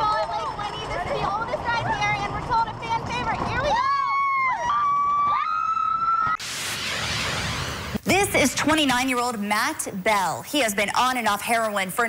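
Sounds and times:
riders screaming: 3.6 - 6.4
graphic transition whoosh: 6.4 - 9.4.

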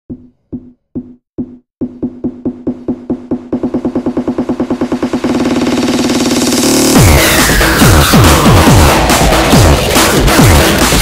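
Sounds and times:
distorted kick drum roll: 1.0 - 11.0.

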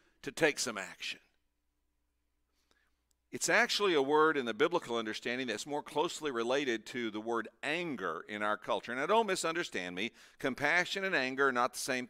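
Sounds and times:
man speaking: 0.2 - 1.3, 3.3 - 12.0.

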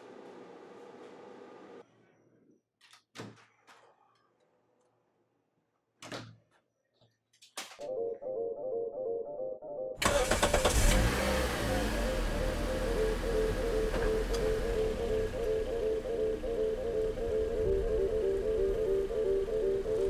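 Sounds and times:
car engine starting and running: 10.0 - 20.0
slow repeating music score: 10.8 - 20.0.

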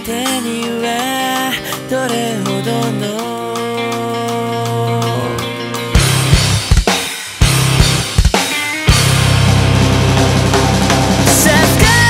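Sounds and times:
drums: 0.0 - 12.0
heavy low guitar chord: 4.1 - 6.7, 8.9 - 12.0.

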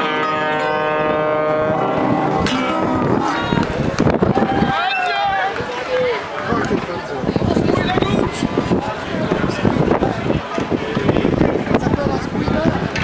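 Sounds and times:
high gliding call: 0.0 - 3.9
people calling out and talking: 0.0 - 13.0.

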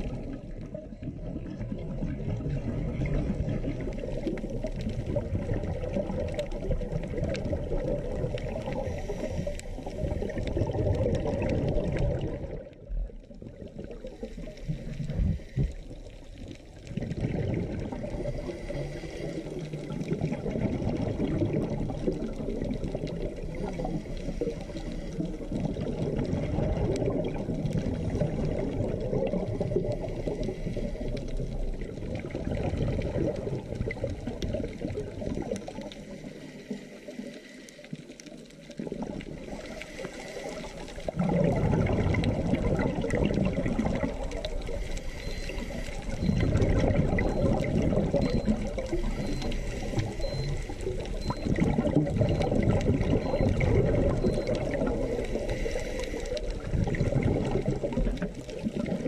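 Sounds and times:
regulator bubbles exhaled underwater: 0.0 - 59.0.

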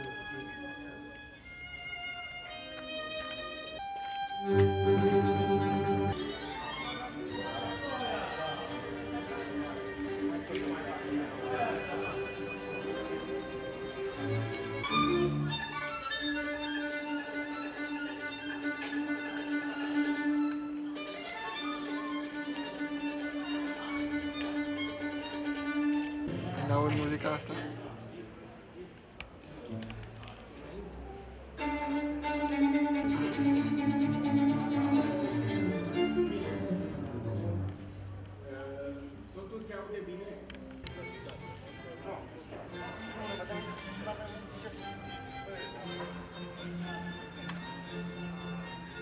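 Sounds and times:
violin and string ensemble: 0.0 - 28.1, 31.5 - 49.0.

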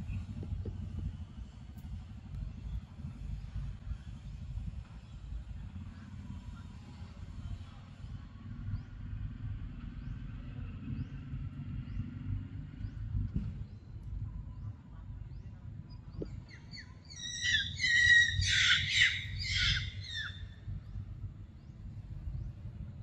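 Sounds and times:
low background rumble: 0.0 - 23.0
bird calling high notes: 17.1 - 20.5.

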